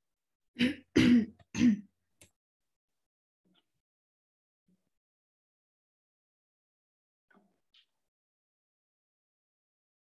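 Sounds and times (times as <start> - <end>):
person coughing: 0.6 - 1.9.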